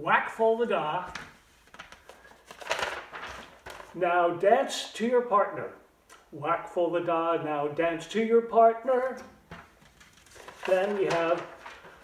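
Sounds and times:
paper rustling: 0.9s - 4.0s, 9.1s - 12.0s.

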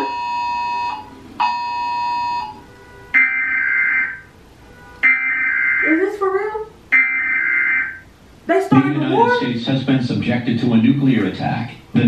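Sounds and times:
harsh two-tone digital signal: 0.0s - 2.6s, 3.2s - 4.3s, 5.0s - 6.0s, 6.9s - 8.1s.

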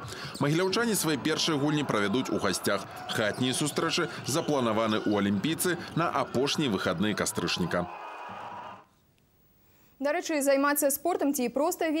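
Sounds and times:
indoor sports hall hubbub: 0.0s - 8.7s.

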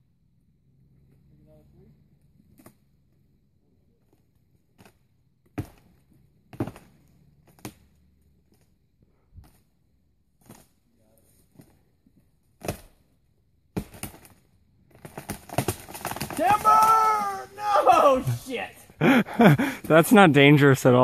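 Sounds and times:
dead tree trunk knocking and cracking: 6.5s - 6.9s.

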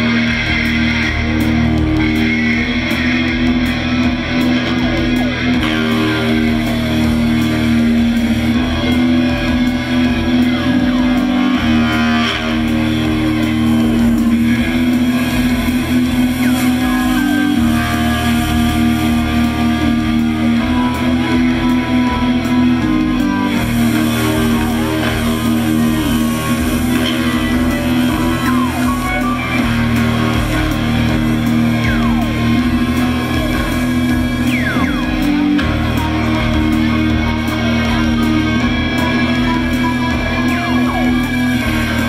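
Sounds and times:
bass guitar: 0.0s - 42.0s
electric guitar: 0.0s - 42.0s
held low note: 0.0s - 42.0s
live band playing: 0.0s - 42.0s.

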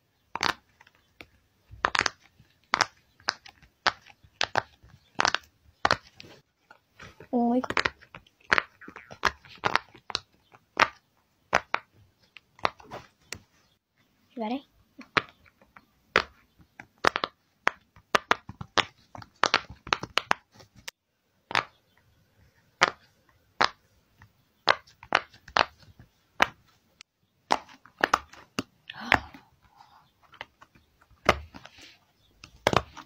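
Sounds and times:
fidget toy bubbles popping: 7.6s - 11.8s.

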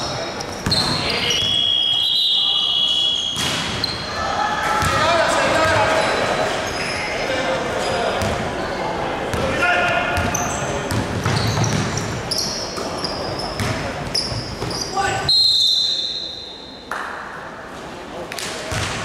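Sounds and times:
sneakers squeaking: 0.0s - 4.2s, 4.8s - 16.8s
basketball bouncing: 10.2s - 12.2s, 13.6s - 14.8s.

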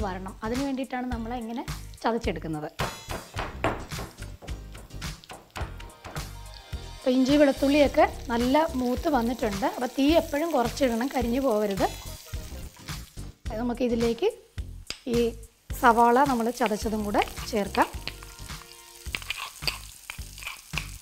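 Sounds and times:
background music: 0.0s - 21.0s
oil sizzling: 0.0s - 21.0s.

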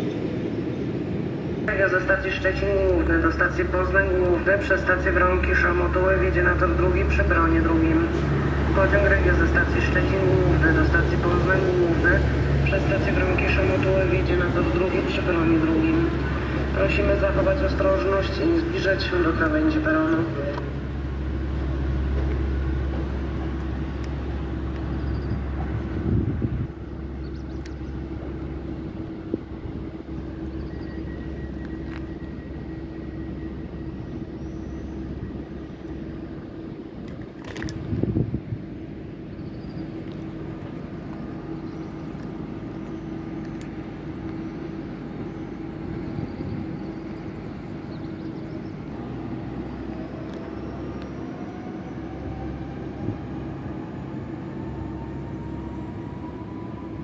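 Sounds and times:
electric train whine: 0.0s - 57.0s
steady low hum: 0.0s - 57.0s.

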